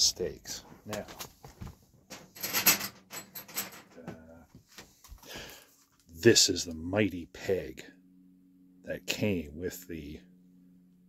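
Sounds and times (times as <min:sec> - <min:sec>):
camping gear rustling and clattering: 0:00.6 - 0:06.2.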